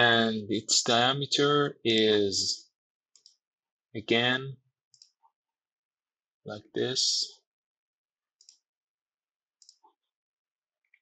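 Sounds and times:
computer mouse clicks: 3.2 - 3.4, 4.9 - 5.3, 8.4 - 8.6, 9.6 - 10.0.

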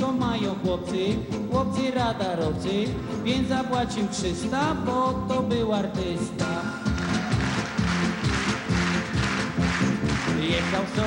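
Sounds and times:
upbeat pop music: 0.0 - 11.0.

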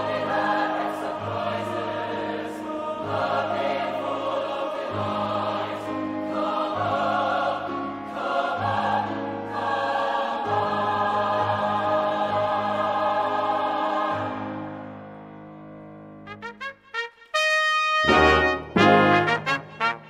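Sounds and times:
choir singing: 0.0 - 15.2, 18.0 - 20.0
piano accompaniment: 0.0 - 20.0.

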